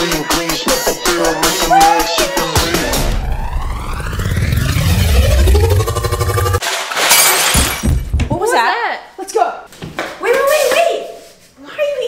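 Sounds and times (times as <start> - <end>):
deep rumble: 2.6 - 6.6
sweeping electronic tones: 2.6 - 6.6
glass shattering crash: 6.6 - 8.2.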